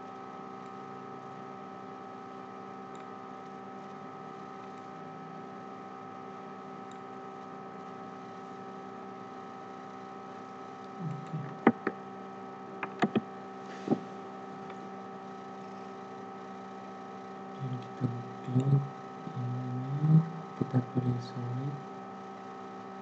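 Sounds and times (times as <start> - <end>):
steady electrical hum: 0.0 - 23.0
sharp clicks: 11.2 - 12.0, 12.8 - 13.3.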